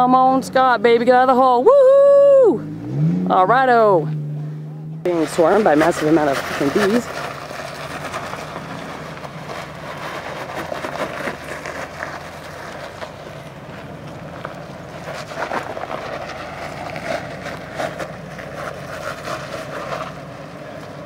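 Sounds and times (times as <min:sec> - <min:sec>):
engine running under load: 0:00.0 - 0:21.0.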